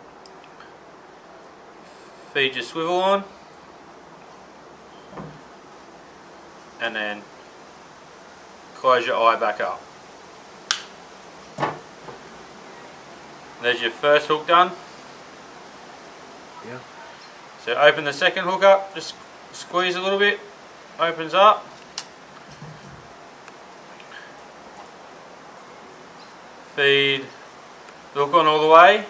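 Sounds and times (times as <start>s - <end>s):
room hiss: 0.0s - 29.0s
sharp click of pliers: 10.7s - 10.9s.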